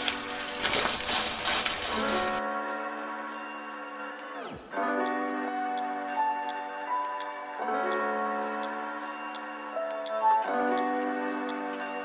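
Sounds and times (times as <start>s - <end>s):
plastic pieces rattling into trays: 0.0s - 2.4s
background music: 0.0s - 12.0s.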